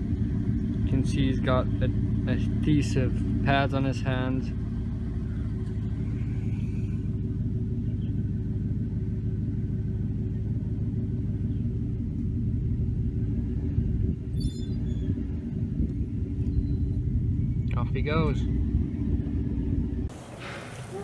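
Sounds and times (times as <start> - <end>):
low rumble: 0.0 - 20.1
low hum: 0.0 - 20.6.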